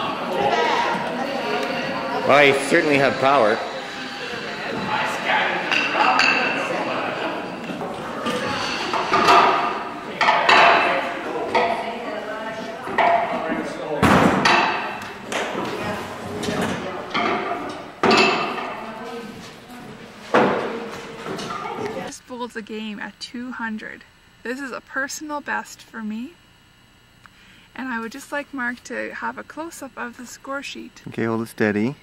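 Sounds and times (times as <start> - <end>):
indistinct chatter in echoing hall: 0.0 - 22.2.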